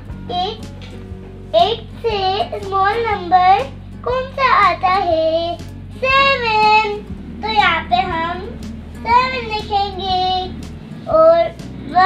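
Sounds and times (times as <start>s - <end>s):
girl's sing-song speech: 0.1s - 0.7s, 1.5s - 12.0s.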